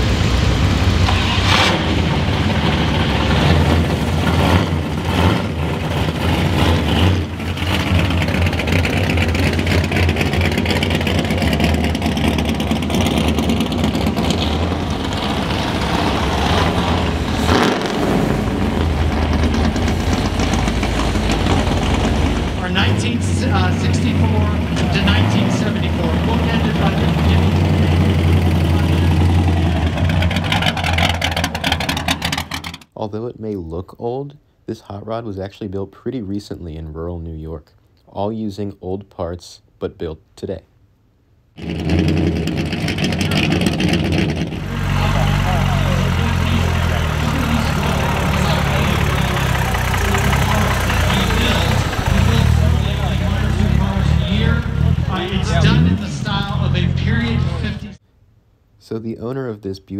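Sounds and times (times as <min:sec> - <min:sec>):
car engine rumble: 0:00.0 - 0:33.0, 0:41.4 - 0:58.0
people talking: 0:22.4 - 0:30.2, 0:33.0 - 0:40.7, 0:43.0 - 0:43.9, 0:44.6 - 0:58.0, 0:58.8 - 0:59.9.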